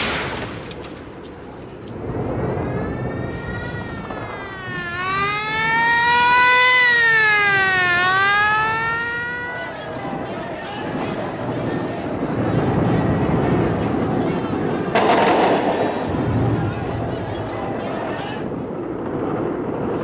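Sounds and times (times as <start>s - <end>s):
low background rumble: 1.0s - 6.1s
siren wailing: 1.9s - 11.0s.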